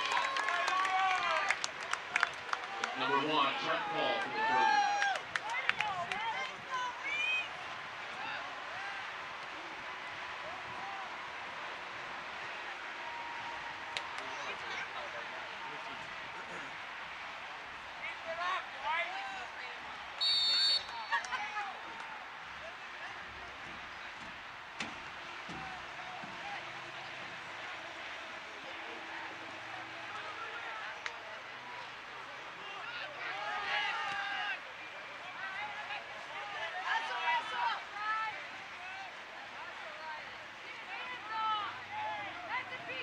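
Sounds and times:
players shouting: 0:00.0 - 0:43.0
referee's whistle blast: 0:20.2 - 0:21.2.

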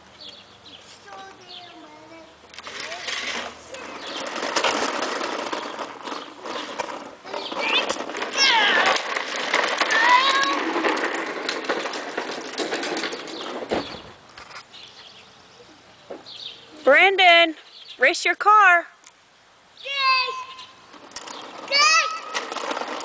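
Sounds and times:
toy truck wheels rattling on concrete: 0:01.1 - 0:14.7, 0:20.2 - 0:23.0.

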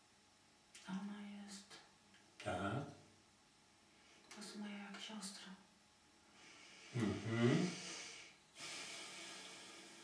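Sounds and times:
faint breathy hiss: 0:03.7 - 0:10.0.

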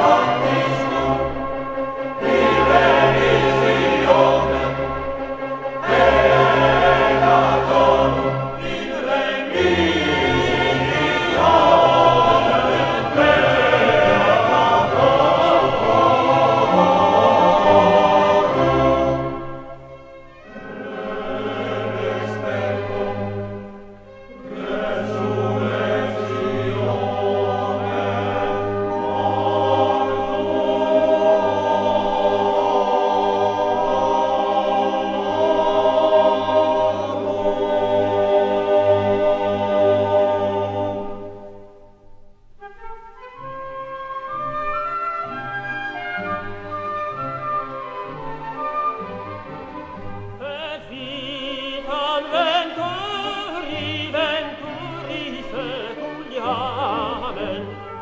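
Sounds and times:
orchestra playing: 0:00.0 - 0:41.5, 0:42.6 - 0:58.0
choir singing: 0:00.0 - 0:42.0, 0:47.8 - 0:58.0.

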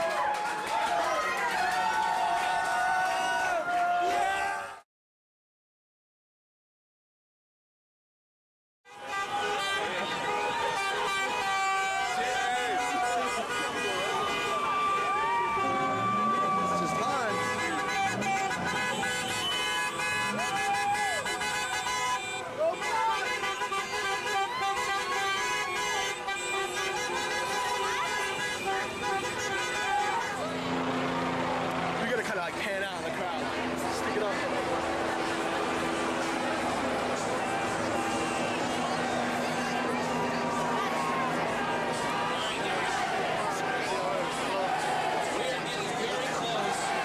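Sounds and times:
people shouting and whooping: 0:00.0 - 0:04.8, 0:14.0 - 0:18.8, 0:20.1 - 0:21.6, 0:35.6 - 0:47.0
car horns honking: 0:08.9 - 0:47.0.

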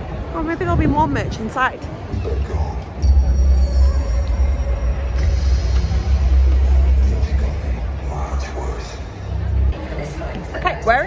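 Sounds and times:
music with steady low bass: 0:02.1 - 0:10.0
faint high held tones: 0:02.9 - 0:07.1.

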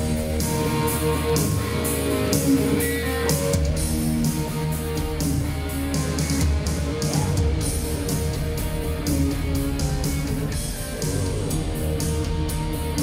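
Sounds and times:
electric guitar: 0:00.0 - 0:13.0
live rock band through pa: 0:00.0 - 0:13.0.

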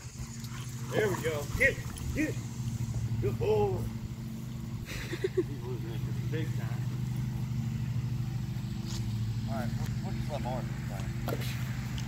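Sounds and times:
low motor hum: 0:00.0 - 0:12.0.

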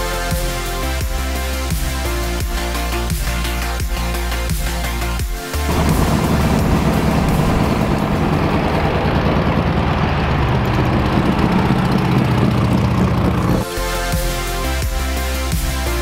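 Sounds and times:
electronic music: 0:00.0 - 0:09.2, 0:10.5 - 0:16.0
car engine low rumble: 0:05.6 - 0:13.7.

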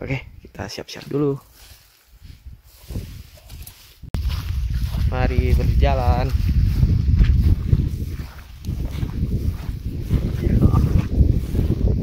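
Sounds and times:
wind buffeting microphone: 0:02.2 - 0:12.0.

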